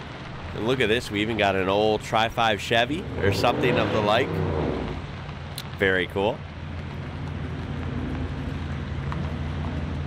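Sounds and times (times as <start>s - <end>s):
diesel truck engines droning: 0.0s - 10.0s.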